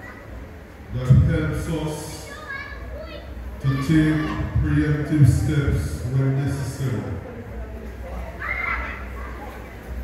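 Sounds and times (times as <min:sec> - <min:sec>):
children chattering: 0:00.0 - 0:00.8, 0:02.1 - 0:04.9, 0:06.8 - 0:10.0
man speaking over pa system: 0:00.9 - 0:02.3, 0:03.6 - 0:07.3.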